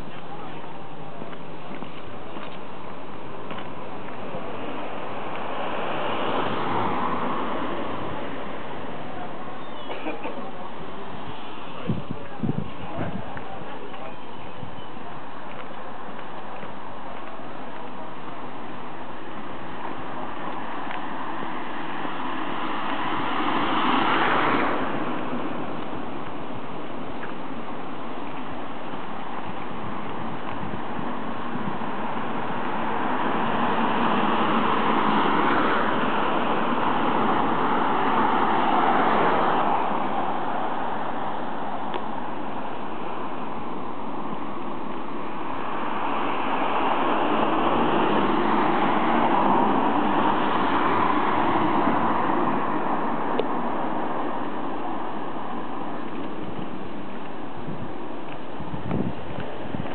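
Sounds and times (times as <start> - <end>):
car passing: 0.0 - 59.9
street noise: 0.0 - 59.9
traffic going by: 0.0 - 59.9.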